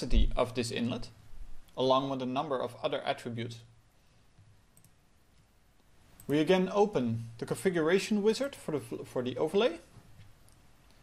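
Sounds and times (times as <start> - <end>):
computer mouse clicks: 4.7 - 6.4.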